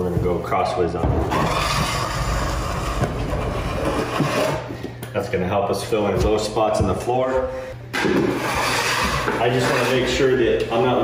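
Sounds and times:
floor scraper scraping wood subfloor: 1.3s - 4.7s, 8.0s - 10.4s.

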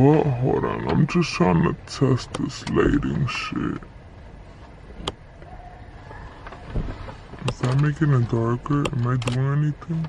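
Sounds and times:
low rumble inside car: 0.0s - 10.0s
sharp click: 8.8s - 9.4s.

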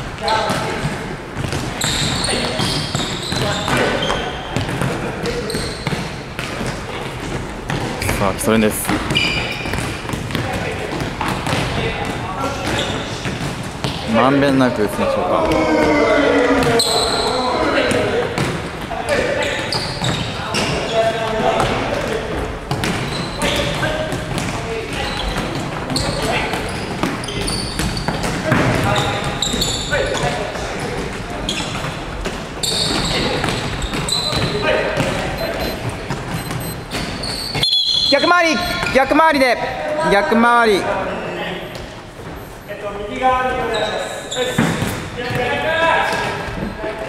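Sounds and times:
players chattering and calling: 0.0s - 47.0s
balls bouncing on wooden floor: 0.4s - 14.1s, 19.7s - 37.6s.

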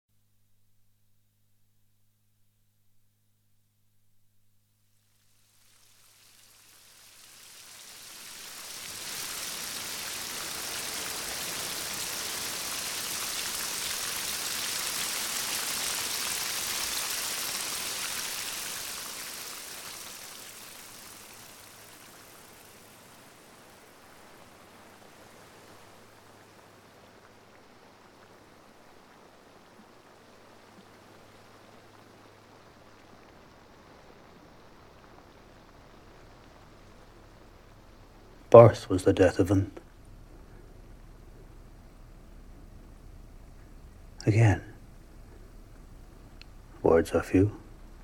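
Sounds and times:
rushing hiss like heavy rain: 5.0s - 48.0s
faint low hum: 18.2s - 48.0s.

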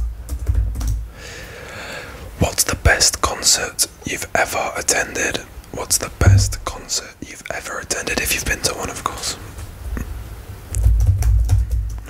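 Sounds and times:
soft even hiss: 1.1s - 10.9s.

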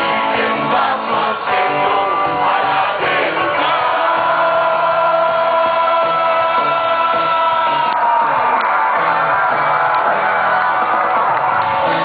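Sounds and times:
crowd voices: 0.0s - 12.0s
electric guitar: 0.0s - 12.0s
rock band playing live: 0.0s - 12.0s.

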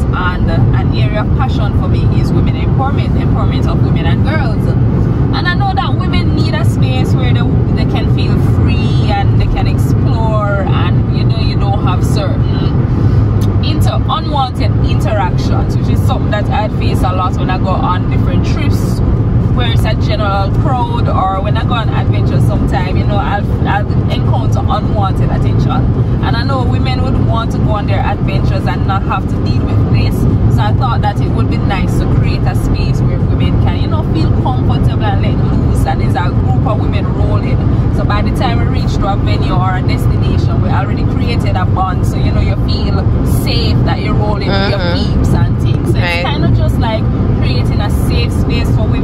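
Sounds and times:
woman talking: 0.0s - 12.8s, 13.4s - 19.0s, 19.6s - 49.0s
car road and engine drone: 0.0s - 49.0s.

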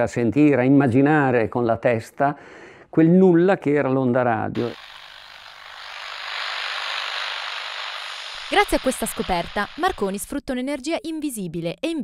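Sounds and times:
radio static hiss: 4.6s - 10.4s.

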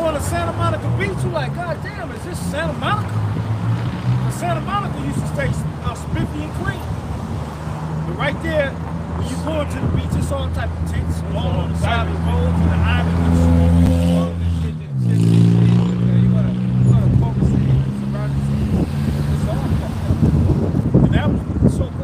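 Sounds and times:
vehicle engine droning: 0.0s - 21.7s.

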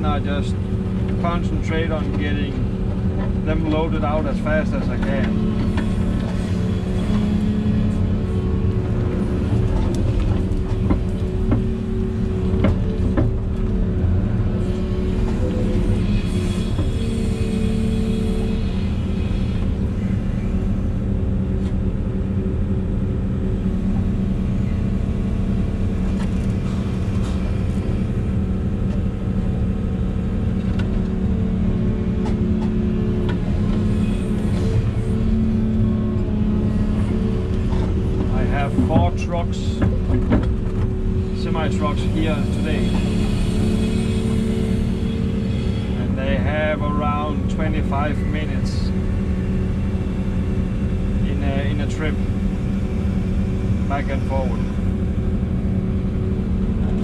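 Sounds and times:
excavator engine and hydraulics: 0.0s - 57.0s.

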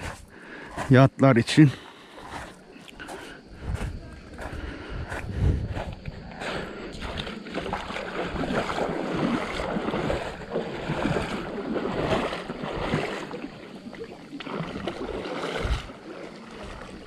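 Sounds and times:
water lapping on pebble shore: 0.0s - 17.0s
wind buffeting microphone: 3.4s - 13.2s, 14.7s - 17.0s.

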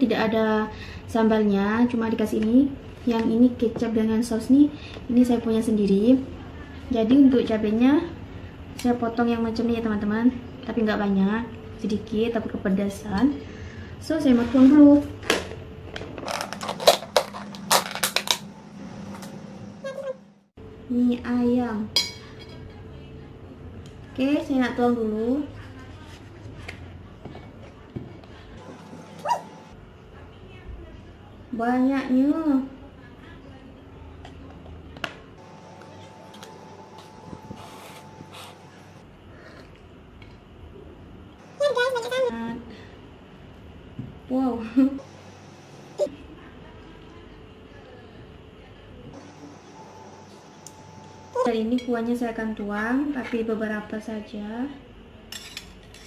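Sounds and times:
woman speaking: 0.0s - 8.2s, 8.8s - 15.2s, 20.9s - 29.4s, 30.0s - 34.5s, 41.4s - 42.9s, 44.3s - 45.2s, 50.8s - 54.9s.

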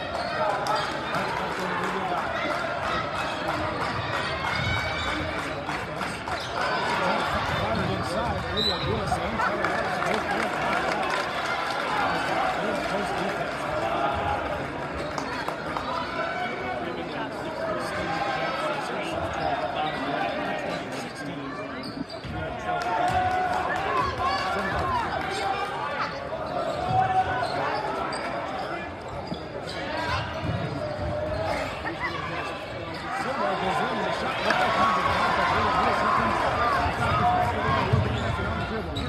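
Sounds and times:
crowd chatter: 0.0s - 39.0s.

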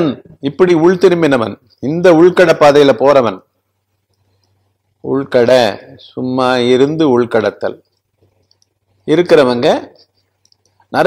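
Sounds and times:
man speaking: 0.0s - 3.5s, 5.0s - 7.9s, 9.0s - 10.2s
faint electrical hum: 0.0s - 11.0s
faint ticks: 7.8s - 8.9s, 10.2s - 10.9s.

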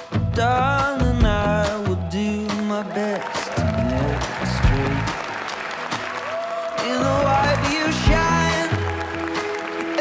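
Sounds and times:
background music: 0.0s - 10.0s
people applauding: 1.6s - 10.0s.

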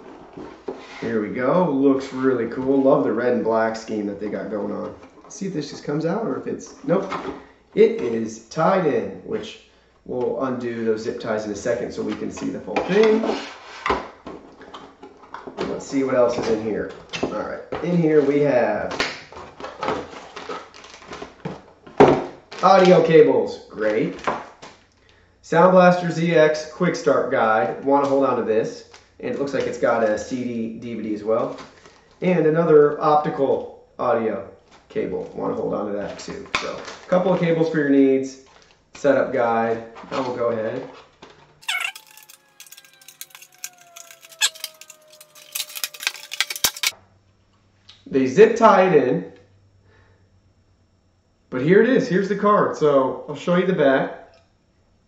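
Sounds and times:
plastic packaging clicks and crackles: 41.2s - 47.0s
paper rustling: 41.6s - 46.9s.

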